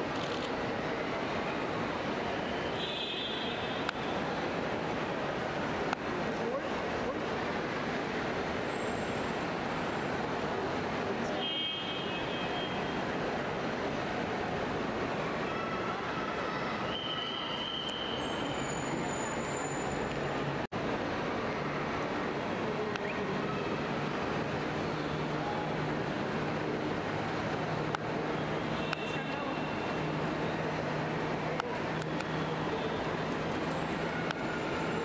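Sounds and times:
traffic din: 0.0s - 35.0s.

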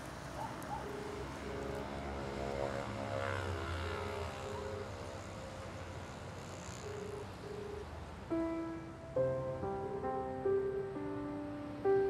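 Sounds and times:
passing vehicle rumble: 0.0s - 12.0s
telephone ringback tone: 6.7s - 8.0s.

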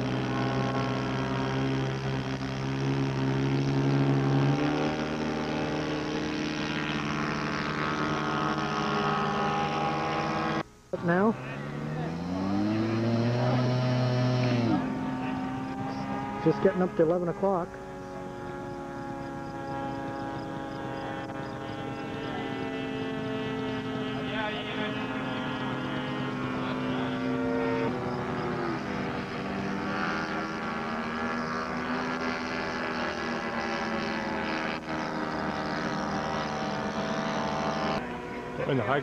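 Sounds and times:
model airplane engine buzzing: 0.0s - 39.0s.

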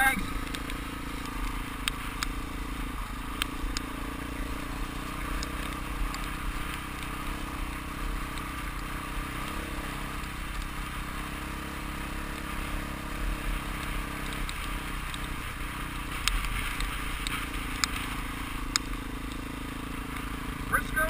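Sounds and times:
dirt bike engine running: 0.0s - 21.0s
sharp clicks: 3.3s - 3.9s.

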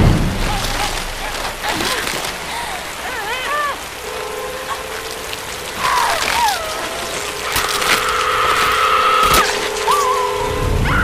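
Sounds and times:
heavy rain pouring: 0.0s - 11.0s
sharp cracks: 5.9s - 10.2s.

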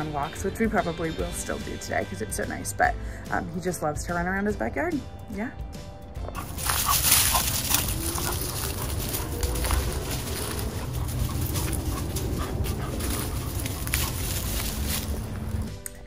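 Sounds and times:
dog whining: 6.3s - 14.2s
dog breathing: 6.3s - 15.6s
dry leaves rustling: 6.4s - 15.7s.

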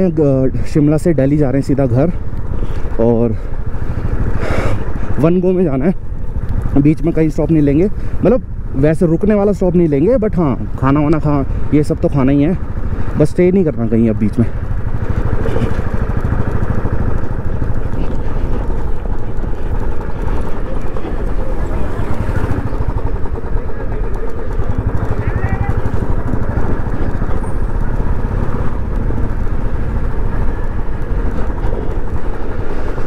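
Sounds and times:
motorcycle engine running: 0.0s - 33.0s.

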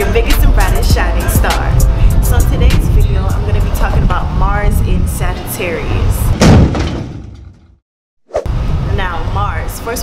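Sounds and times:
loud thud impact: 6.3s - 7.8s.

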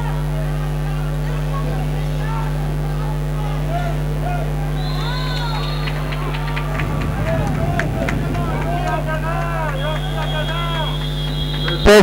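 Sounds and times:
steady low hum: 4.2s - 11.6s.

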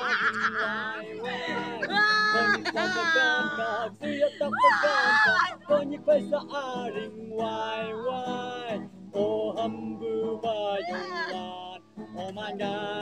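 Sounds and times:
acoustic guitar: 0.0s - 13.0s
man singing: 0.0s - 13.0s.

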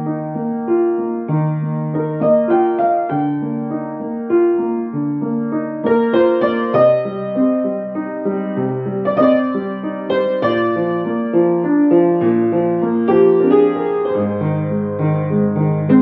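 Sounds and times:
upright piano playing: 0.0s - 16.0s.

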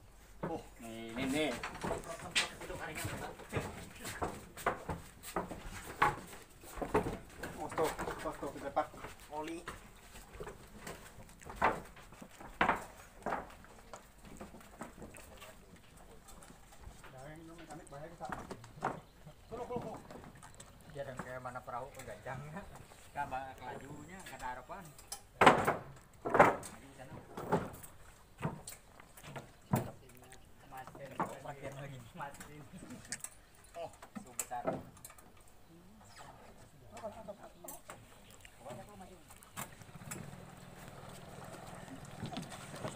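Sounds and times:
wooden knocks on a dock: 25.4s - 28.6s.

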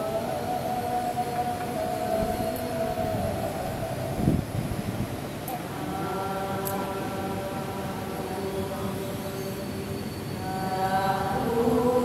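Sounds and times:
congregation chanting a long note: 0.0s - 4.2s, 10.4s - 12.0s.

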